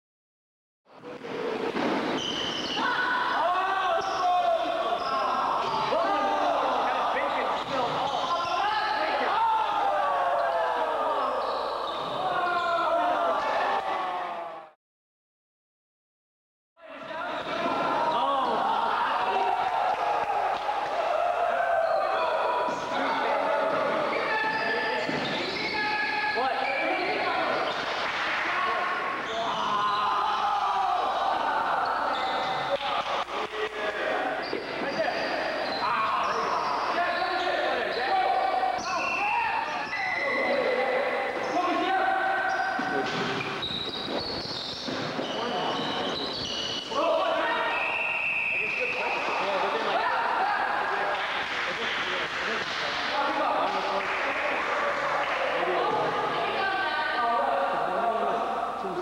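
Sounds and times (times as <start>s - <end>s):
people shouting in echoing gym: 1.1s - 14.8s, 16.8s - 52.2s.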